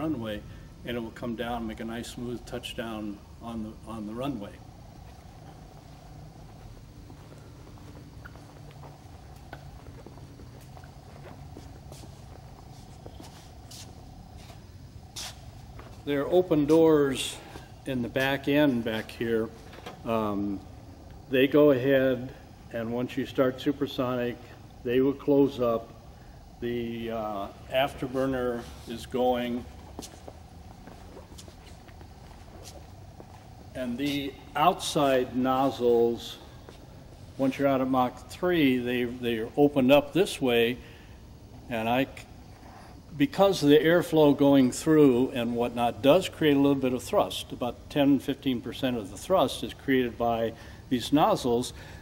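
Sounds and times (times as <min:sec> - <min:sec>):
faint steady tone: 0:00.0 - 0:52.0
low steady hum: 0:00.0 - 0:52.0
soft shuffle of movement: 0:00.2 - 0:21.3, 0:22.3 - 0:39.8.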